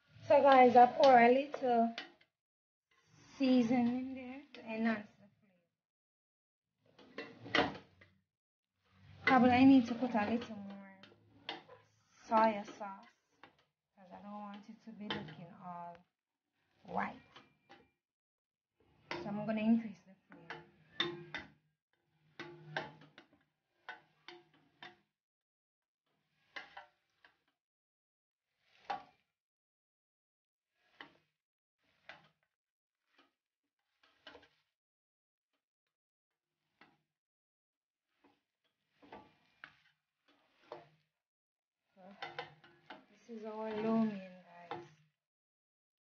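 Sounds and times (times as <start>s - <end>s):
wooden spoon stirring noodles in pot: 0.0s - 5.2s, 7.0s - 7.9s, 8.9s - 16.0s, 16.6s - 17.8s, 22.3s - 25.2s, 26.2s - 27.6s, 28.5s - 29.4s, 30.7s - 34.8s, 36.4s - 37.1s, 38.0s - 41.2s, 41.8s - 45.2s.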